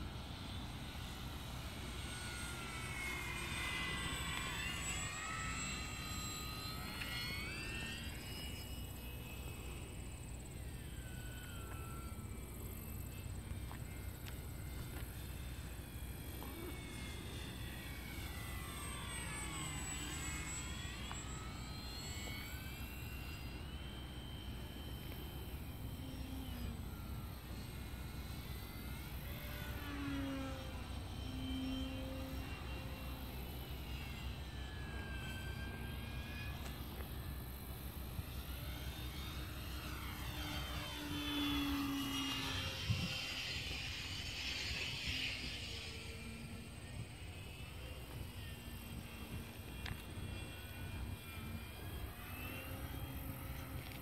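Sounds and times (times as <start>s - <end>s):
model plane motor whine: 0.0s - 54.0s.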